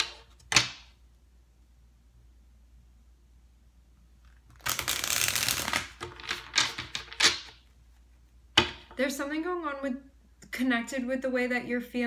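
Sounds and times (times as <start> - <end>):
cards riffle-shuffled: 4.5 - 7.6.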